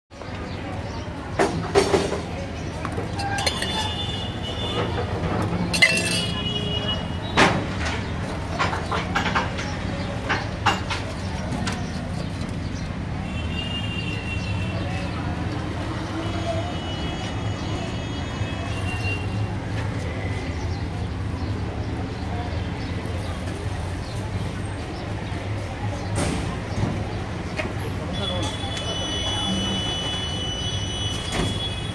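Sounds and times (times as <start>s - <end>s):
faint indistinct voices: 0.1s - 31.9s
low rumble of street traffic: 0.1s - 31.9s.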